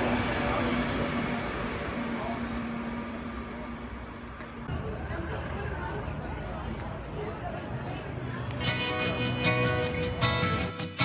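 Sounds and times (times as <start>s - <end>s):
electric train rumbling hum: 0.0s - 10.6s.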